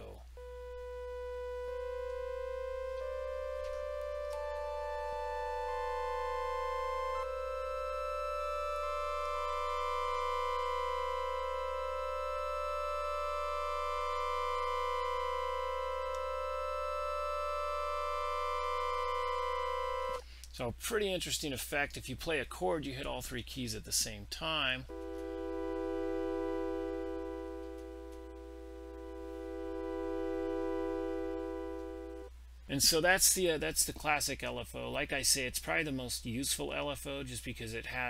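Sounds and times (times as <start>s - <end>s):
organ synth chord: 0.4s - 20.2s, 24.9s - 32.3s.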